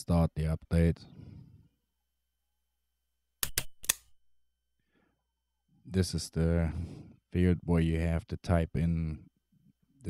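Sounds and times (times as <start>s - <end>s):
computer mouse clicks: 3.4s - 4.1s.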